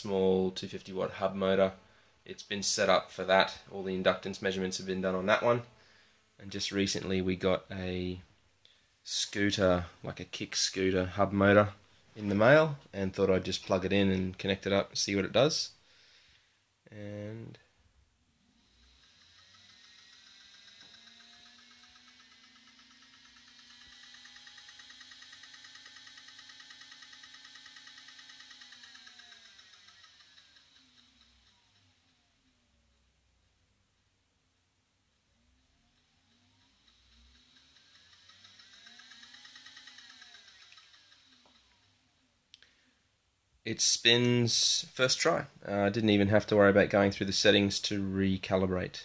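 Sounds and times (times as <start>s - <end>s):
electric motor whine: 18.6s - 32.6s, 35.6s - 42.1s.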